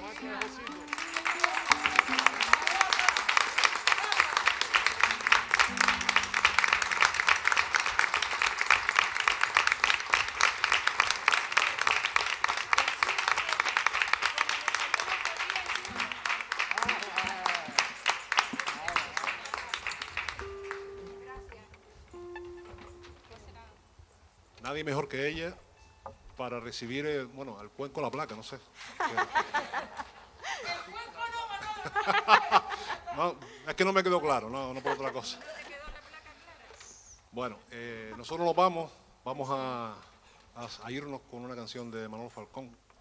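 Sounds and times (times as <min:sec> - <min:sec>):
audience applauding: 0:00.0 - 0:21.2.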